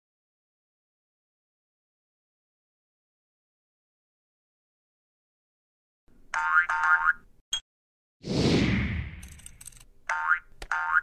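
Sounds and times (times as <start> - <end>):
falling whoosh with crackle: 8.2 - 9.2.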